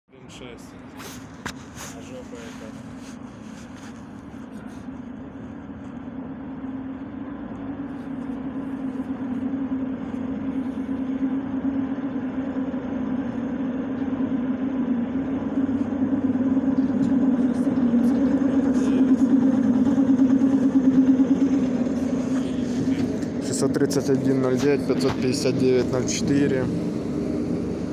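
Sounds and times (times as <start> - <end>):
electric train pulling in: 9.4 - 27.9.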